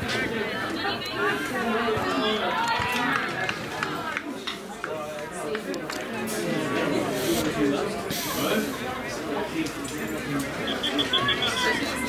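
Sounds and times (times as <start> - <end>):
voices calling and shouting: 0.0 - 12.0.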